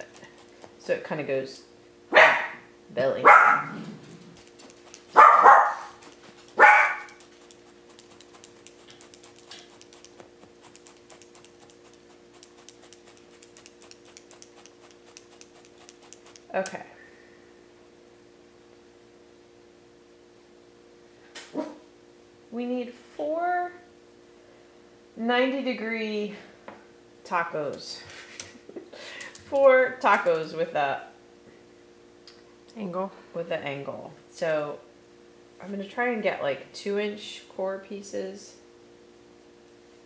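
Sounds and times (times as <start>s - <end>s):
steady low hum: 0.0s - 40.0s
dog barking: 2.1s - 3.8s, 5.1s - 7.3s
felting needles ticking: 4.4s - 5.2s.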